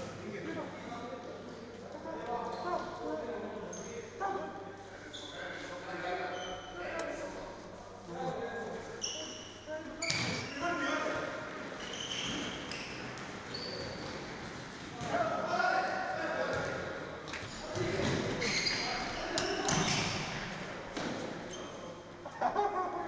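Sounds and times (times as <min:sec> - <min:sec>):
shoes squeaking on court: 0:09.0 - 0:10.6, 0:11.8 - 0:14.3, 0:17.4 - 0:20.2, 0:21.5 - 0:21.9.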